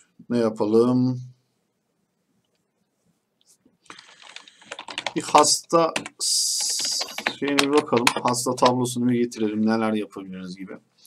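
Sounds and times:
computer keyboard typing: 0:03.9 - 0:09.0.

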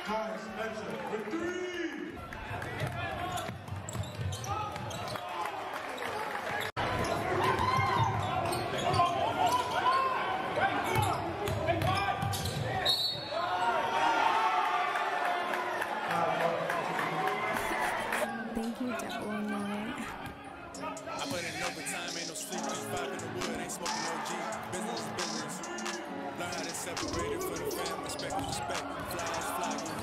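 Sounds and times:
spectators voices and shouts: 0:17.1 - 0:30.0.

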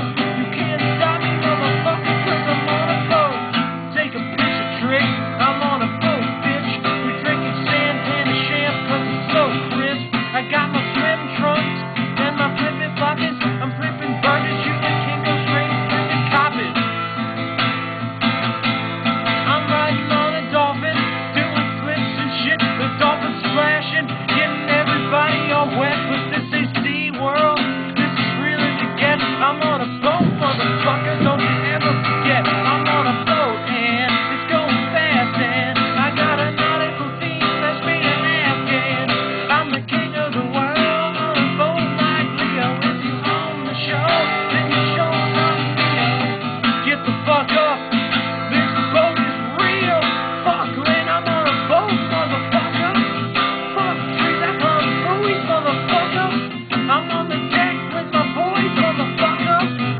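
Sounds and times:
acoustic guitar strumming: 0:00.0 - 0:59.9
man singing: 0:00.0 - 0:59.9.

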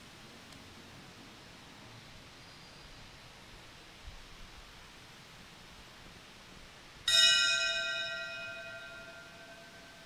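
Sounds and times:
bell ringing: 0:07.1 - 0:09.7.

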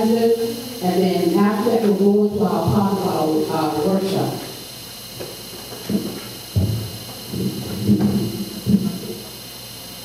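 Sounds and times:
microphone handling thumps and rubbing: 0:05.1 - 0:09.2.

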